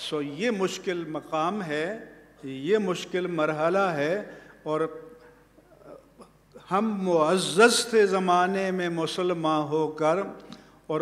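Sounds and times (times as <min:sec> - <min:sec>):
man speaking: 0:00.0 - 0:05.1, 0:05.8 - 0:11.0.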